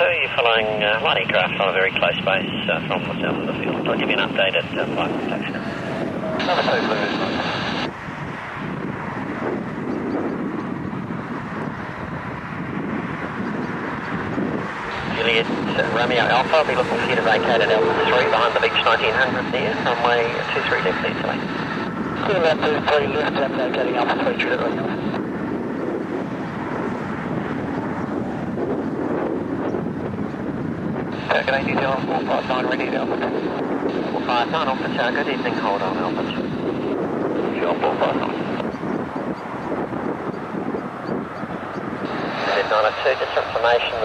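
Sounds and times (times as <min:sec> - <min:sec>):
distant aircraft rushing: 0:00.0 - 0:44.0
wind on microphone: 0:00.0 - 0:44.0.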